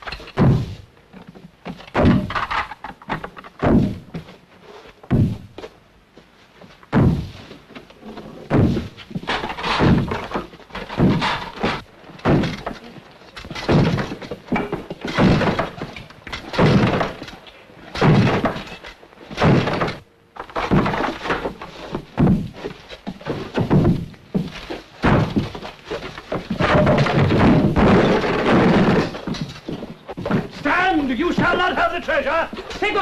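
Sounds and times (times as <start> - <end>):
heavy thuds and crashes: 0.2 - 0.9, 1.7 - 4.4, 5.0 - 5.7, 6.9 - 7.7, 8.4 - 31.8.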